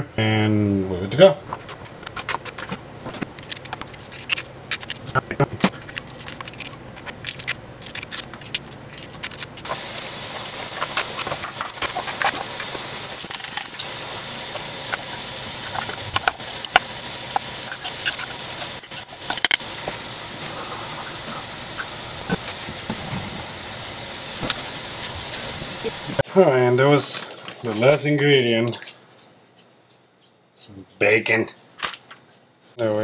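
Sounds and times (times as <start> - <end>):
steady hiss: 1.3 - 28.2
spoon scraping metal bowl: 1.5 - 13.9, 14.5 - 19.6.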